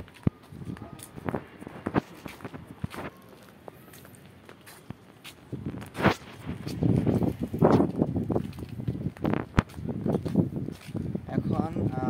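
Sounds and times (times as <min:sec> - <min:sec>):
footsteps on concrete: 0:00.0 - 0:11.3.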